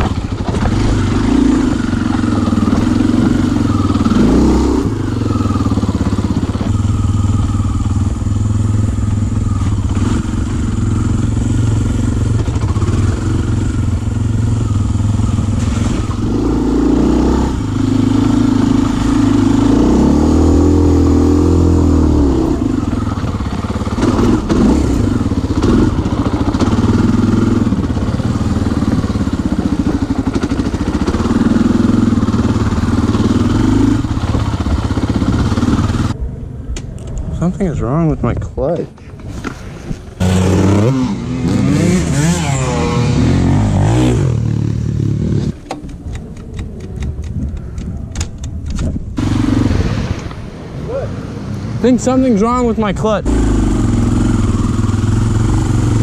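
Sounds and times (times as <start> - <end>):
dirt bike engine revving: 0.0 - 36.2, 40.1 - 45.7, 49.2 - 56.0.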